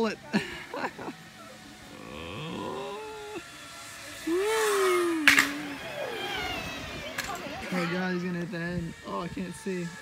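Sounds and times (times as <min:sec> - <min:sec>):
person vocalizing rising ooo: 0:01.9 - 0:03.5, 0:04.2 - 0:06.3.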